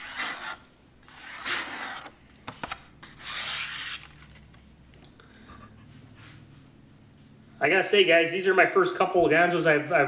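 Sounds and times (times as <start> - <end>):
knife slicing paper: 0.0 - 2.1, 3.0 - 4.3.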